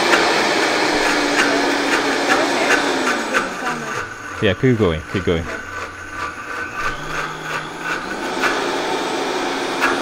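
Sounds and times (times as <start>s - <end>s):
blender running on high: 0.0s - 10.0s.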